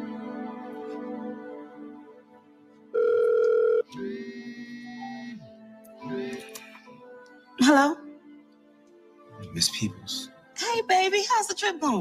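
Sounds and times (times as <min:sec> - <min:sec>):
soft background music: 0:00.0 - 0:12.0
electronic telephone ring: 0:03.0 - 0:05.5.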